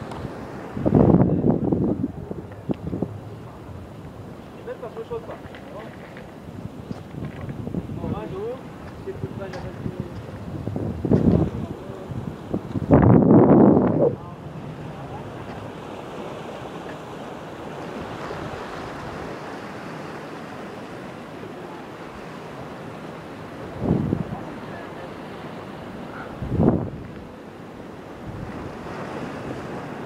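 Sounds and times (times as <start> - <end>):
wind buffeting microphone: 0.0 - 21.3, 21.9 - 30.0
sea surf washing: 0.0 - 30.0.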